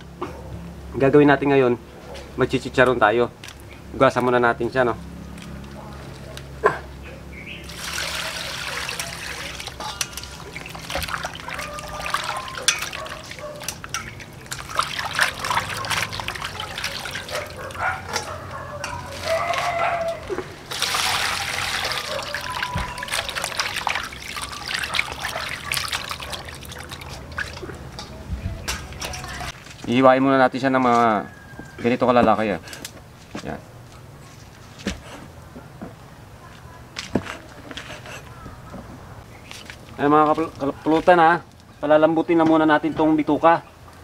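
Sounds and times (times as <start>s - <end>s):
water splashing in metal bowl: 7.6s - 17.8s, 20.6s - 29.6s.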